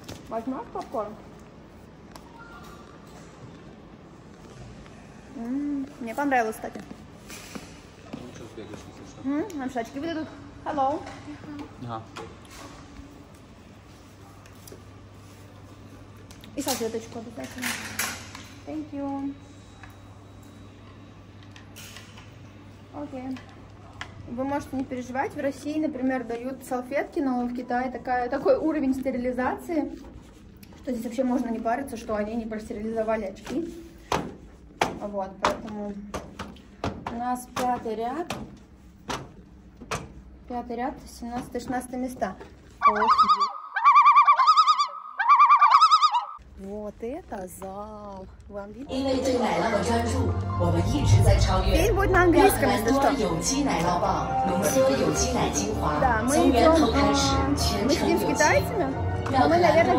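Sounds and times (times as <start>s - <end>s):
steady low hum: 46.4s - 59.9s.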